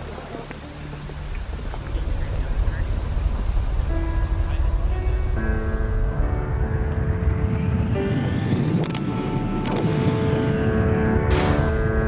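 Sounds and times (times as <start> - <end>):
low rough rumbling: 0.0 - 9.6.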